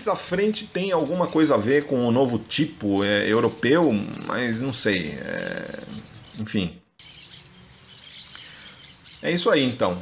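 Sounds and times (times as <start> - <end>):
high-pitched bird chirping: 0.2 - 10.0.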